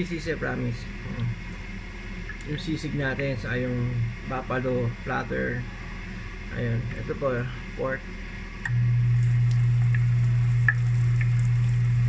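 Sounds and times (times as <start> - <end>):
low hum: 0.0 - 12.0
oil popping: 8.6 - 12.0
meat frying in hot oil: 9.1 - 12.0.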